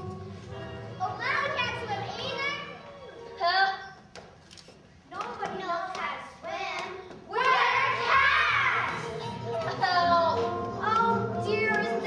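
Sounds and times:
background music: 0.0s - 12.0s
children calling out: 7.3s - 9.0s.

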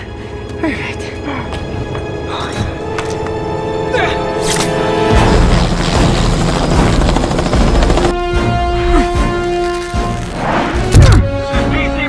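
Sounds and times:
film score music: 0.0s - 12.0s
helicopter rotor and engine: 4.4s - 8.8s.

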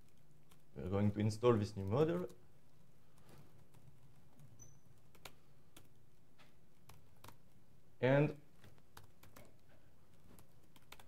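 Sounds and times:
laptop keys typing: 0.0s - 0.9s, 1.8s - 7.7s, 8.6s - 11.0s
low room hum: 0.0s - 11.0s.

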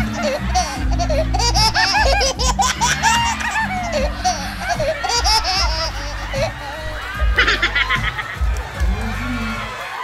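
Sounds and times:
person laughing hard: 0.0s - 9.8s
music from sound system: 0.0s - 10.0s.

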